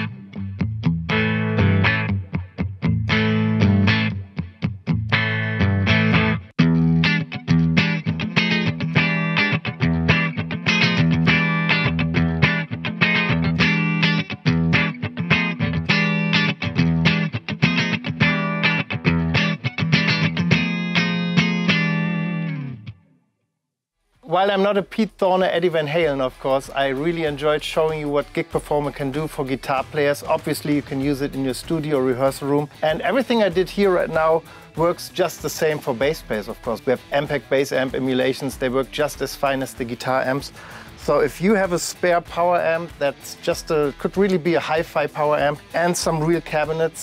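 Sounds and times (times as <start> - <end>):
distorted electric guitar riffs: 0.0 - 23.1, 26.1 - 47.0.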